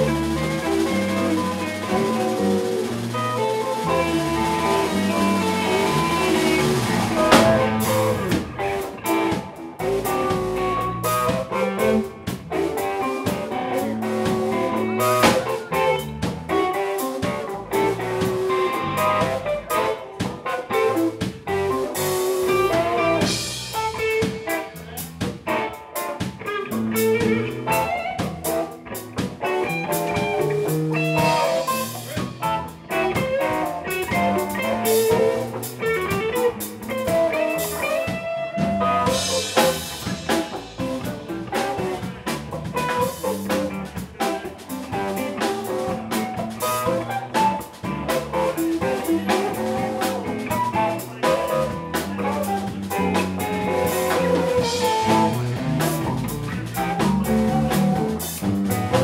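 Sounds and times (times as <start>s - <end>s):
drum kit: 0.0s - 59.0s
electric bass: 0.0s - 59.0s
electric guitars: 0.0s - 59.0s.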